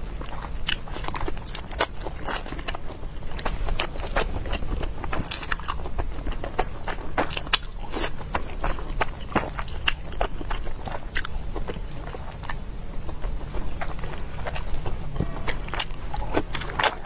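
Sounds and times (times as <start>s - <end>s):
person chewing food: 0.0s - 17.0s.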